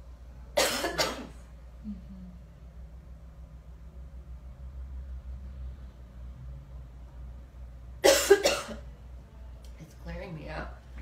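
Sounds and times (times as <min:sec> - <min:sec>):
low room hum: 0:00.0 - 0:11.0
person coughing: 0:00.6 - 0:01.4, 0:08.0 - 0:08.8.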